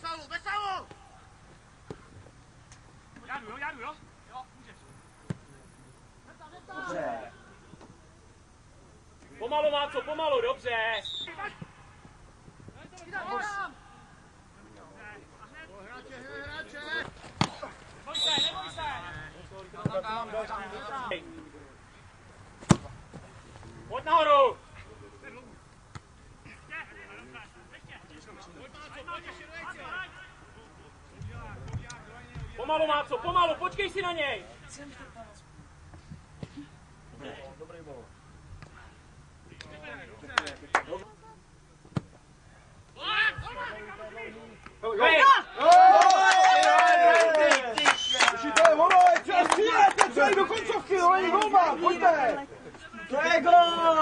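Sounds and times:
man shouting: 13.1s - 14.1s, 43.0s - 43.9s, 44.9s - 47.7s
football being kicked: 22.6s - 23.0s.

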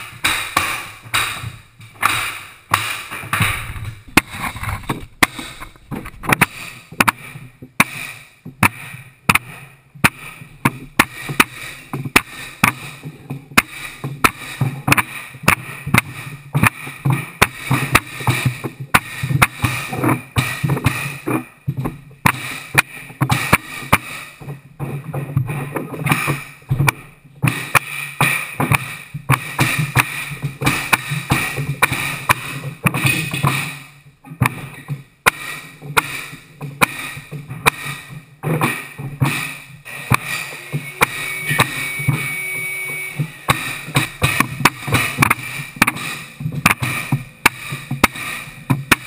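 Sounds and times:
mallet striking flooring nailer: 0.0s - 42.5s, 43.2s - 49.0s
steady low hum: 3.4s - 7.0s.

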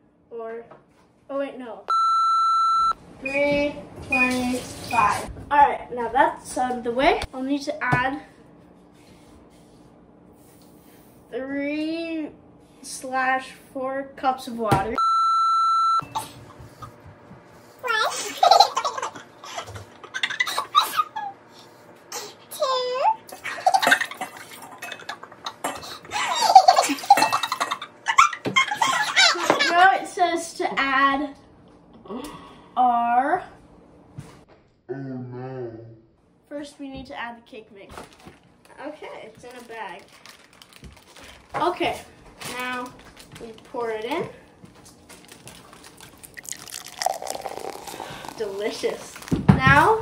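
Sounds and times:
plastic bag rustling: 39.2s - 43.6s, 44.9s - 50.0s
water pouring and splashing: 46.2s - 49.4s.

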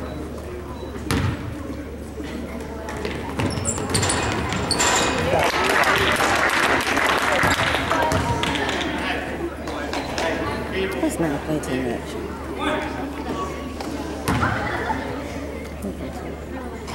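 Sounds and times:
spectators shouting and cheering: 4.7s - 9.2s.

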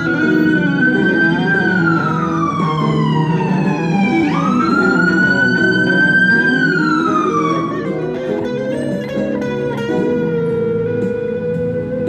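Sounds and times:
emergency siren wailing: 0.0s - 10.4s
electric guitar: 0.0s - 12.0s.

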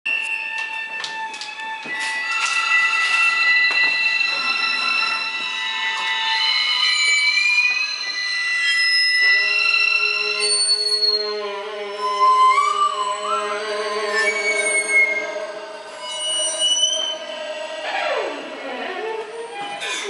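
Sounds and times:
high squealing tones: 1.9s - 20.0s
low sustained tones: 2.0s - 19.9s.

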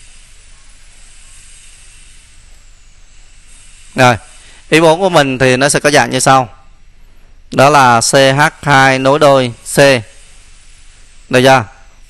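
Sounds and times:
background hiss: 0.0s - 12.0s.

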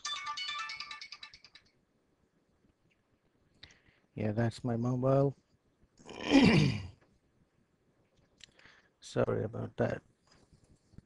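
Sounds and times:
mobile phone ringtone: 0.0s - 1.6s.

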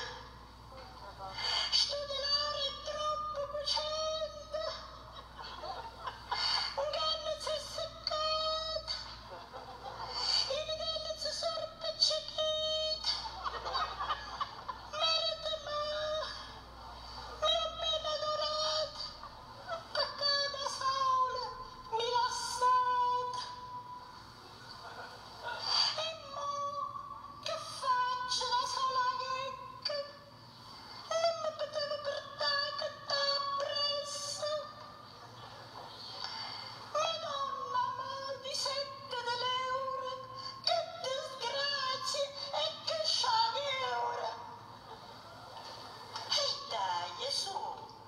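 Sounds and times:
woman chanting a mourning lament: 0.0s - 24.0s, 25.4s - 30.3s, 31.0s - 35.3s, 36.4s - 44.6s, 46.2s - 47.9s.

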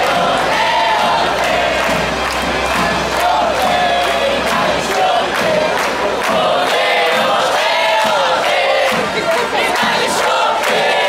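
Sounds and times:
singing voices over loudspeakers: 0.0s - 11.0s
street crowd noise: 0.0s - 11.0s.

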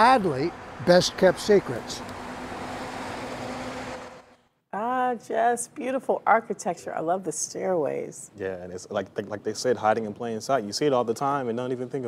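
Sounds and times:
tow truck driving past: 0.0s - 4.4s.

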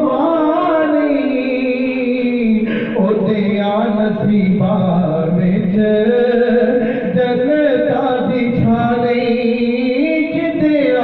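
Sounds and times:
person chanting devotional song: 0.0s - 11.0s.

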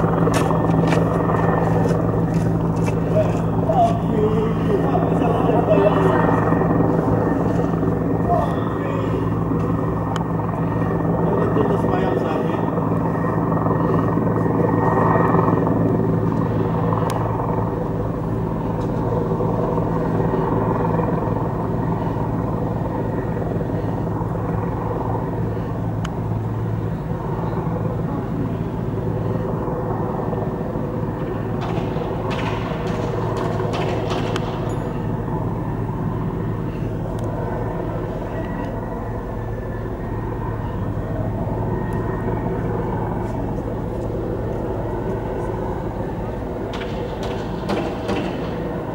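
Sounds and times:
steady engine drone: 0.0s - 48.9s.

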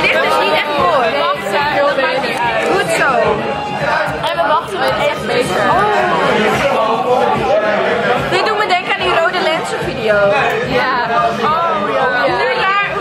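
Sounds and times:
voices chattering: 0.0s - 13.0s.

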